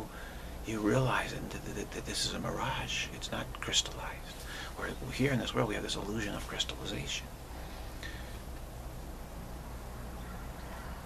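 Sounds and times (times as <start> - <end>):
man speaking softly: 0.0 - 7.3
low steady hum: 0.0 - 11.0.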